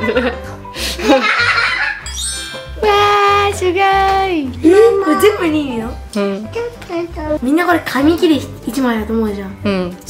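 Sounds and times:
background music with low beat: 1.5s - 10.0s.

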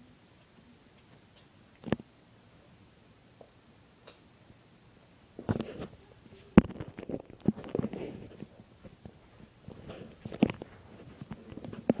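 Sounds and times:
puppies play-wrestling: 5.4s - 12.0s.

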